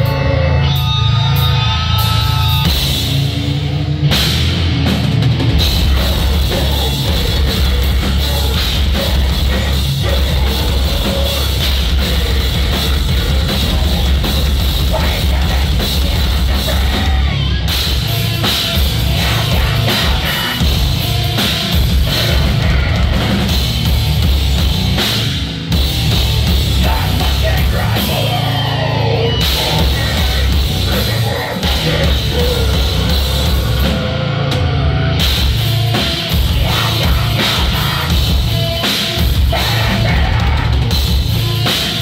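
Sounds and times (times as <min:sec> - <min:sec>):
distorted electric guitar: 0:00.0 - 0:42.0
drum kit: 0:00.0 - 0:42.0.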